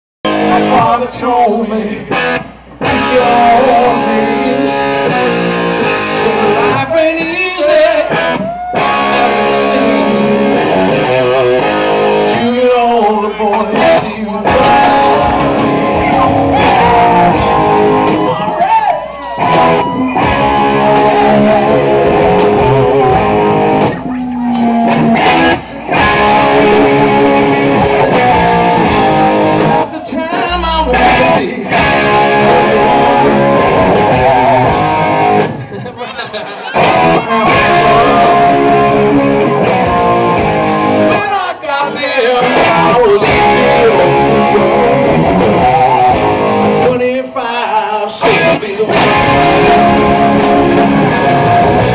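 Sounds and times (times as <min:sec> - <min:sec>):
live rock music with electric guitar: 0:00.3 - 0:51.9.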